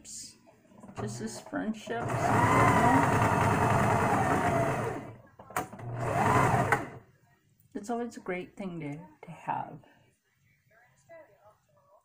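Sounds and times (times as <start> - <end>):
electric sewing machine stitching: 0.8 - 7.0.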